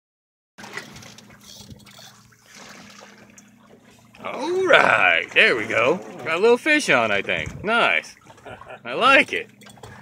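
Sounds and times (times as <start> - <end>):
water lapping against boat hull: 0.6 - 10.0.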